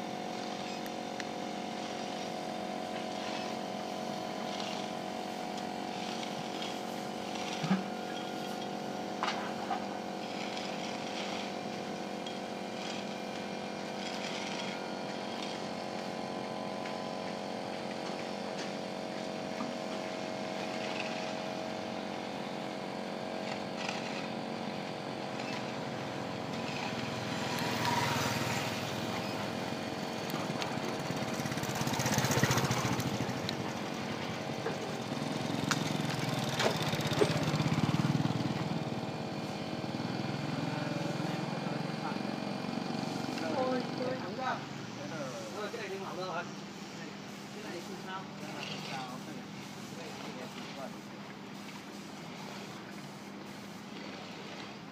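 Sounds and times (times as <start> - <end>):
gate motor humming: 0.0 - 44.1
motorcycle passing: 26.4 - 38.9.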